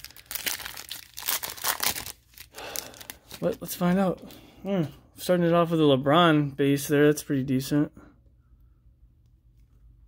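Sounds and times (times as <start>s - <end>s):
foil wrapper being torn open: 0.0s - 3.6s.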